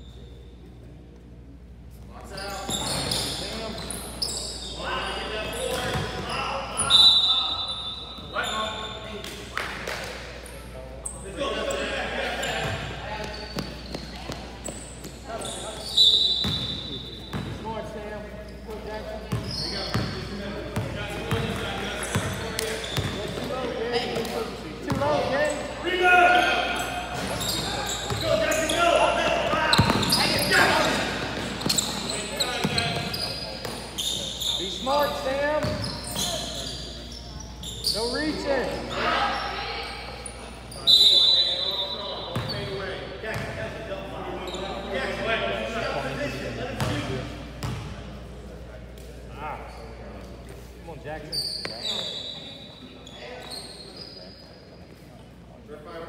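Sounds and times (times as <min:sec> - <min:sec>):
indistinct shouts echoing: 0:25.3 - 0:31.2.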